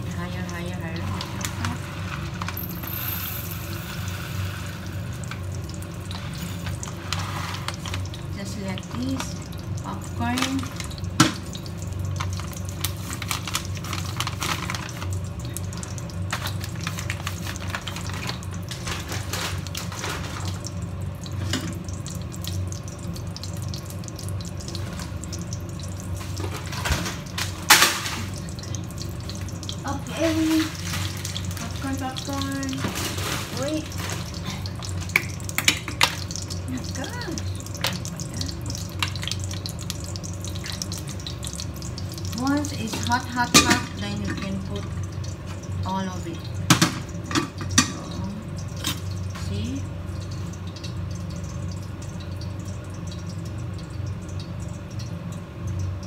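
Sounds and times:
butter sizzling in a saucepan: 0.0s - 56.0s.

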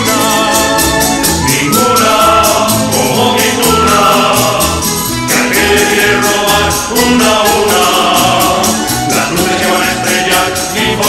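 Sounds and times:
chorus of voices singing: 0.0s - 11.0s
strummed guitars: 0.0s - 11.0s.

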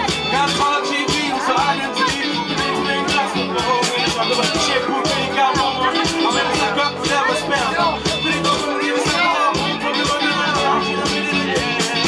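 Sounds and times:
drum kit beat: 0.0s - 12.0s
live funk band playing: 0.0s - 12.0s.

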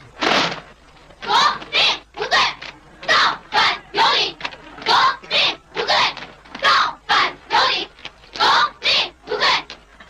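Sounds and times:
marchers chanting in unison: 1.2s - 9.8s.

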